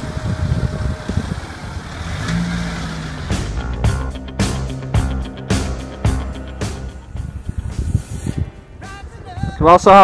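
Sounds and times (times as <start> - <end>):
wind on microphone: 0.0 - 2.7, 6.6 - 10.0
vehicle engine running: 0.0 - 7.5
music: 3.2 - 10.0.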